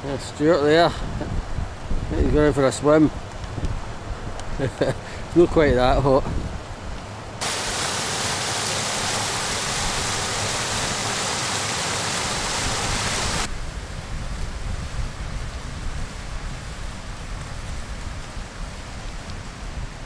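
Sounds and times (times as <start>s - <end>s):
wind rumble on microphone: 0.4s - 7.0s, 12.5s - 20.0s
water rushing down spillway: 7.4s - 13.5s.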